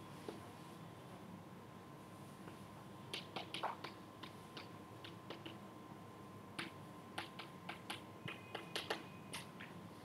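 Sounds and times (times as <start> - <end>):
chalk tapping and scratching on blackboard: 2.5 - 5.6, 6.6 - 9.8.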